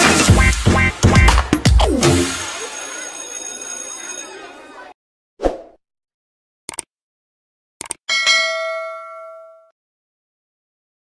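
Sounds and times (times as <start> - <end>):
sharp clicks: 6.7 - 6.9, 7.8 - 8.0
bell-like ding: 8.1 - 9.8.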